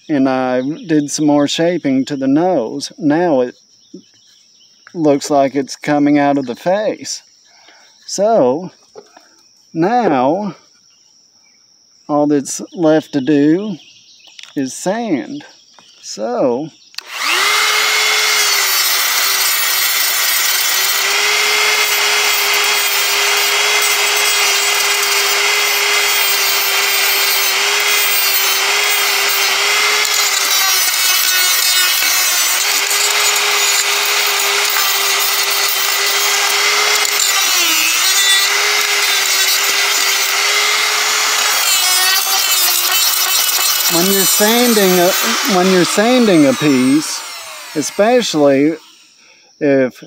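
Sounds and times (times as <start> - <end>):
rotary tool motor whine: 17.0 - 49.2
abrasive rasping on wood: 17.1 - 48.4.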